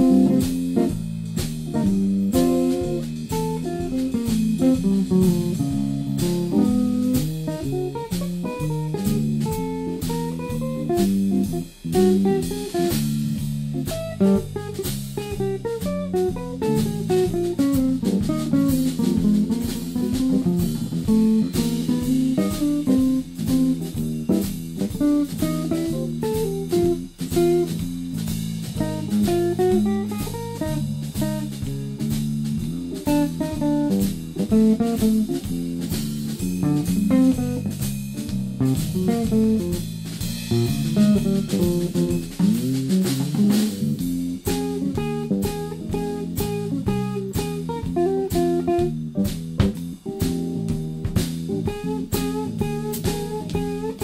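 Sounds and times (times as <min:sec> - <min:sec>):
blues jazz band playing: 0:00.0 - 0:54.0
guitar melodic line: 0:00.0 - 0:54.0.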